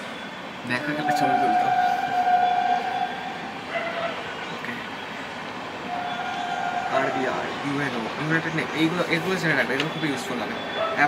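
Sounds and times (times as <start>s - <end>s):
horn blasts: 0.6s - 4.4s.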